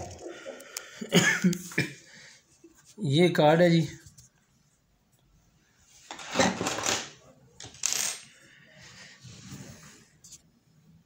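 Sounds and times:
objects rattling on wooden table: 6.1s - 8.2s.

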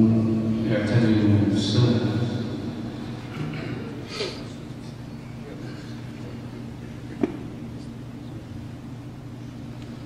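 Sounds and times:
low murmur of room sound: 0.0s - 10.0s.

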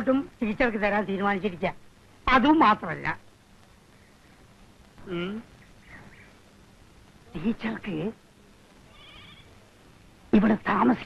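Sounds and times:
faint animal bleat: 8.9s - 9.5s.

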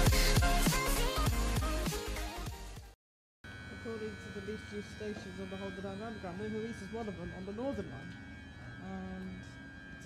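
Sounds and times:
train electrical whine and hum: 3.5s - 10.0s
wavering lower tone: 3.5s - 10.0s.

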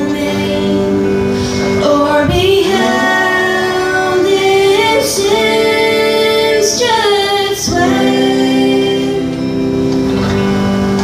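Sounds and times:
woman singing into microphone: 0.0s - 9.7s.

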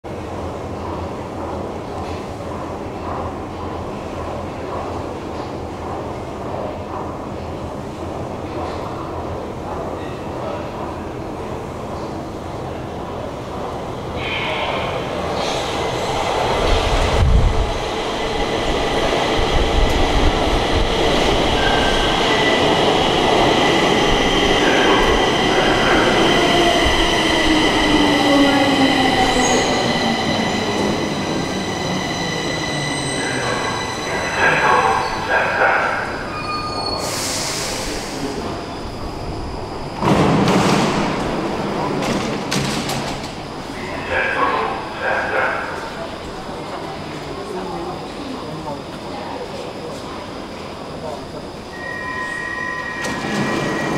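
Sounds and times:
metro train arriving: 0.0s - 53.9s
air hiss: 37.0s - 38.4s
train doors opening: 39.6s - 44.6s, 51.8s - 53.9s.

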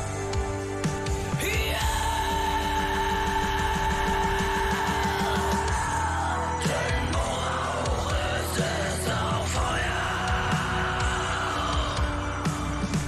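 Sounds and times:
metal band playing: 0.0s - 13.0s
rapid bass drum strokes: 0.0s - 13.0s
woman singing: 1.4s - 12.2s.

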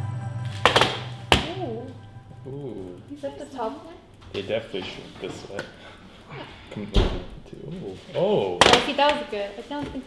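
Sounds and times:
background music: 0.0s - 4.2s.

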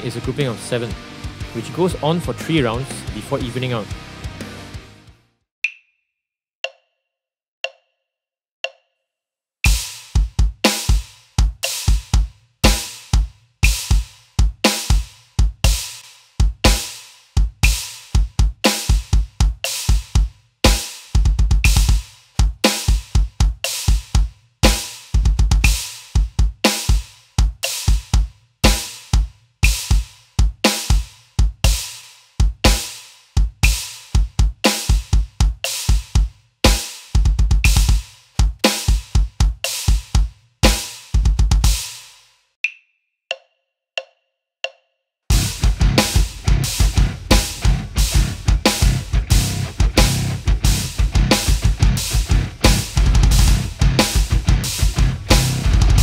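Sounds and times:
electronic drum kit metal groove: 0.0s - 5.2s, 9.6s - 42.2s, 45.3s - 56.0s.

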